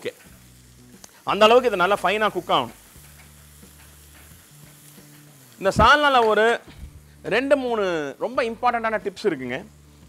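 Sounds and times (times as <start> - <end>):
onions frying in oil: 0.0 - 10.0.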